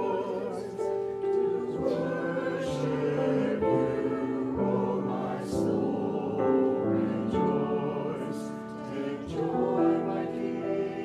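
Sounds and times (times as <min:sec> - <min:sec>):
mixed choir singing: 0:00.0 - 0:11.0
piano accompaniment: 0:00.0 - 0:11.0.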